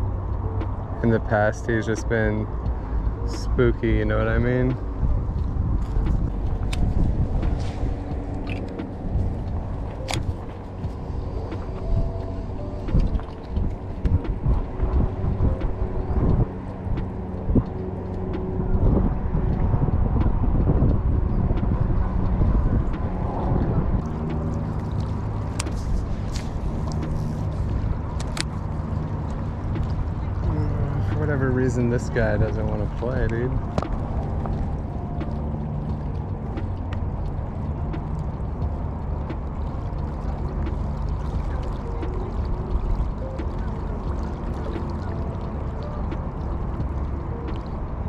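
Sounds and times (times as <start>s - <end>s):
low droning hum: 0.0s - 48.0s
wind rumbling on microphone: 0.0s - 48.0s.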